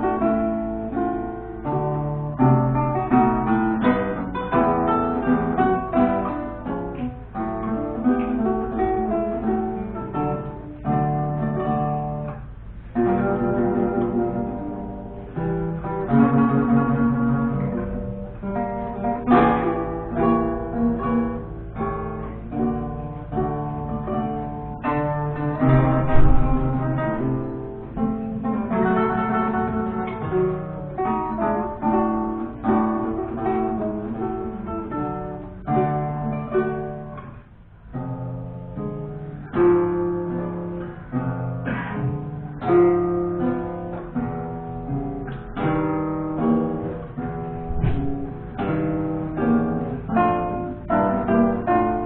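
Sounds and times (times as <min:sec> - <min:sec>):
two guitars playing a duet: 0:00.0 - 0:52.0.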